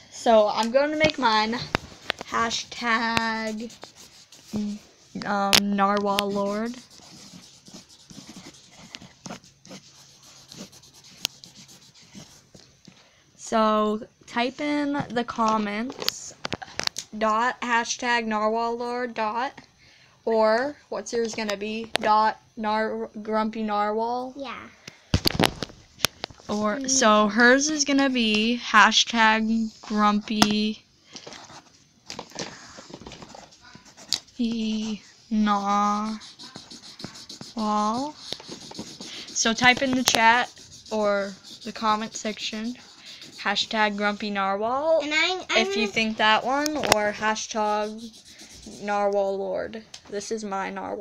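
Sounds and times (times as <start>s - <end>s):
pencil scratching on paper: 1.8s - 4.8s, 6.0s - 12.6s, 32.8s - 44.5s, 45.6s - 49.4s.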